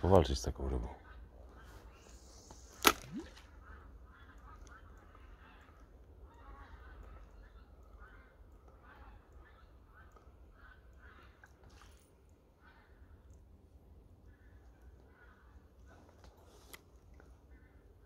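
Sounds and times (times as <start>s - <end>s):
fishing line hissing off reel: 2.0s - 3.4s
water sounds: 2.6s - 3.7s
reel bail snapping shut: 2.8s - 3.3s
faint handling sounds: 15.8s - 17.5s.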